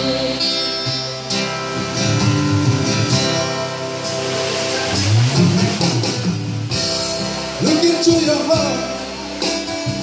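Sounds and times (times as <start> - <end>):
bass line: 0.0 - 10.0
strummed acoustic guitar chords: 0.0 - 10.0.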